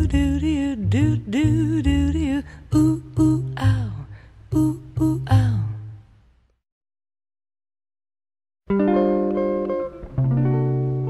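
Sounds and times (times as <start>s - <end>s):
plucked guitar: 0.0s - 5.6s, 8.7s - 11.0s
woman singing jazz ballad: 0.0s - 6.0s
double bass notes: 0.0s - 6.2s.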